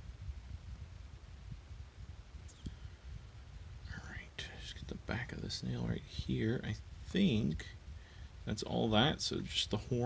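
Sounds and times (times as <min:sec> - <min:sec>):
low background rumble: 0:00.0 - 0:10.0
man whispering: 0:03.8 - 0:07.8.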